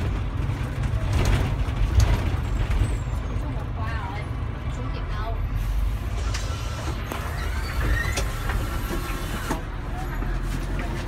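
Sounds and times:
rattles and knocks: 0.0 - 3.1
bus engine rumble: 0.0 - 11.0.

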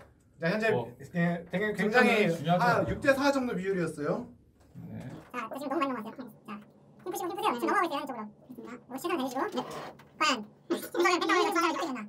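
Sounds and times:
men talking: 0.4 - 5.3.

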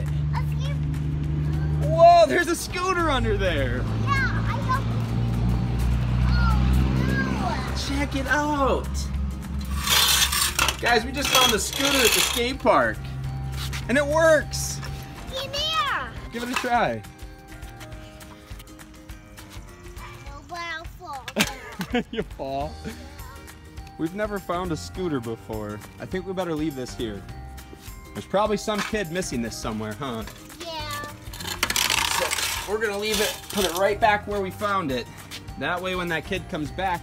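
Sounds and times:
background music with held notes: 0.0 - 37.0.

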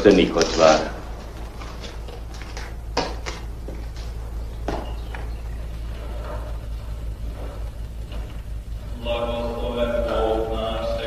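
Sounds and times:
film soundtrack hum: 0.0 - 11.0.

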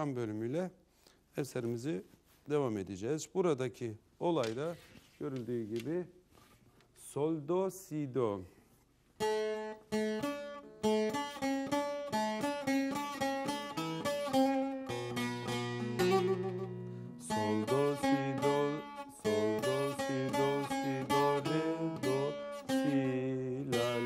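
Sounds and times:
plucked long-necked lute melody: 9.2 - 24.0.

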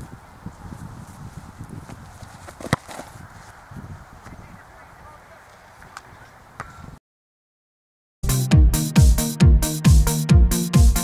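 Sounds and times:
wind on microphone: 0.0 - 7.0
boot kicking football: 1.1 - 3.6.

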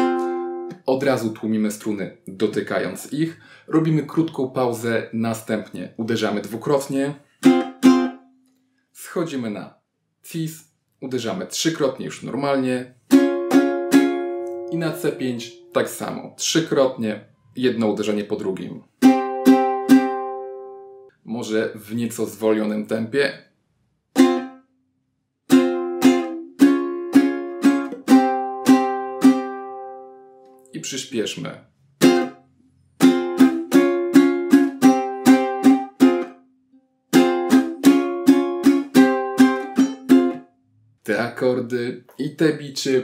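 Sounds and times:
ukulele chord strums: 0.0 - 0.9, 7.4 - 8.3, 13.1 - 15.8, 19.0 - 21.1, 24.1 - 24.6, 25.5 - 30.5, 32.0 - 32.4, 33.0 - 36.4, 37.1 - 40.5.

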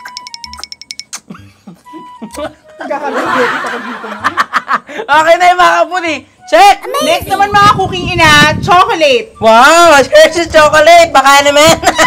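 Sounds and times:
fast countdown timer ticking: 0.0 - 1.2.

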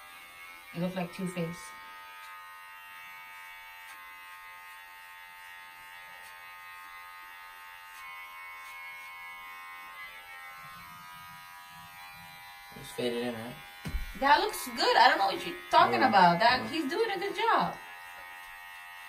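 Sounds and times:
electric hair clippers buzzing: 0.0 - 19.0.

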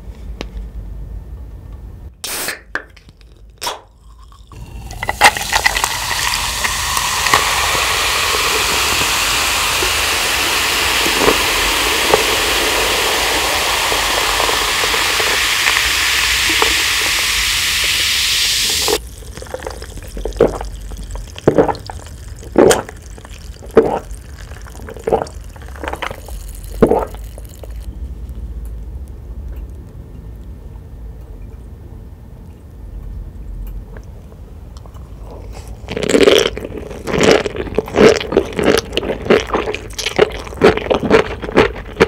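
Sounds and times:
soda fizzing into a glass: 4.5 - 27.9.

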